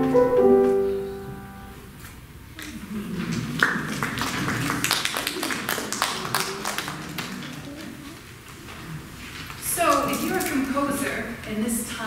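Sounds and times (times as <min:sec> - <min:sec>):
audience applauding: 0:02.7 - 0:09.1.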